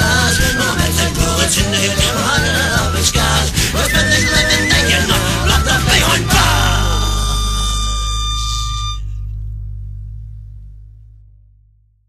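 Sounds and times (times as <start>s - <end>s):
band chord ringing out: 3.7s - 11.8s.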